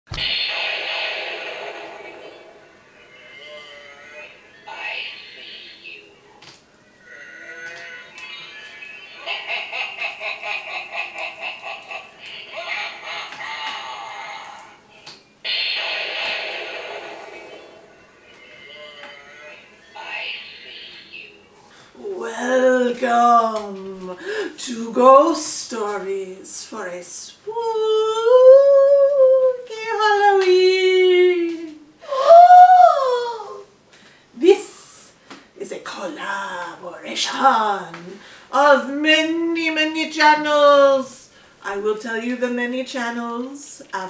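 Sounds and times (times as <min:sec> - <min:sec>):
sudden loud sound: 0:00.1 - 0:02.8, 0:15.5 - 0:18.2
cackling laugh: 0:09.2 - 0:14.6
woman's ghostly wail: 0:27.7 - 0:29.6, 0:32.0 - 0:33.7.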